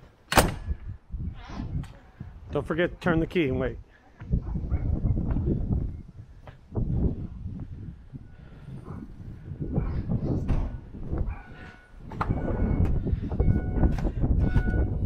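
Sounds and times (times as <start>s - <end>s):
wind buffeting microphone: 0.4s - 15.0s
footsteps on concrete: 6.4s - 7.8s.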